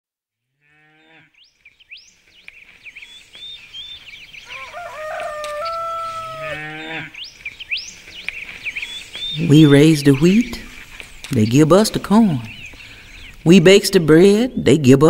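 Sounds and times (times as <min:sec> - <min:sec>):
cow mooing: 0:00.6 - 0:01.4, 0:04.5 - 0:07.2
small birds chirping: 0:00.8 - 0:15.0
stepped pitched animal call: 0:04.5 - 0:07.0.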